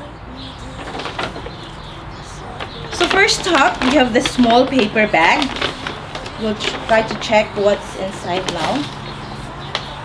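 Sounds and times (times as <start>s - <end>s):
paper bags rustling: 0.4s - 10.0s.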